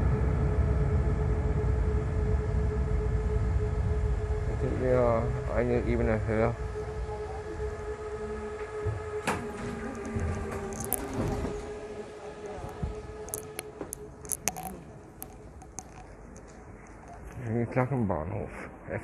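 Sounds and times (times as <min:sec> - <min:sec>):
train electrical whine: 0:00.0 - 0:17.4.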